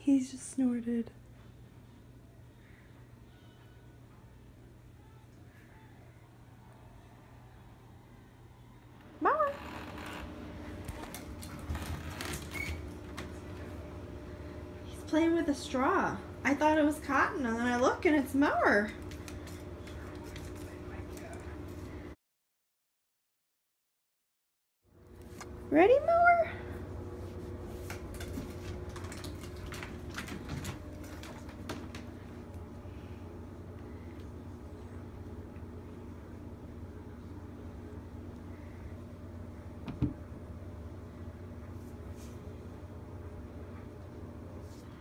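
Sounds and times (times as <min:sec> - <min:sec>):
low steady hum: 0:24.9 - 0:45.0
straw skittering on hardwood floor: 0:27.6 - 0:32.3.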